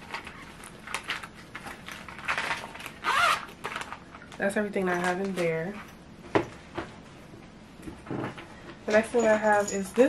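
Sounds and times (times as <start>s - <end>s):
plastic crinkling: 0.0s - 5.8s
zipper closing on a pouch: 3.0s - 3.6s.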